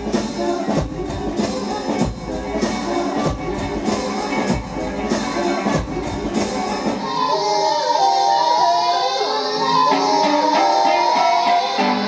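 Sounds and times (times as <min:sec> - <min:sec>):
drums: 0:00.0 - 0:12.0.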